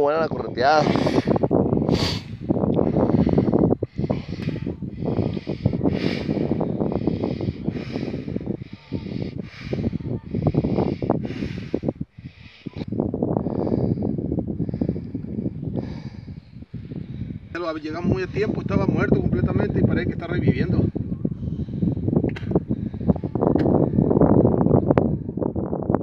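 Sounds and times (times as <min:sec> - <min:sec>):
forceful hissing breath puffs: 0:00.8 - 0:12.8.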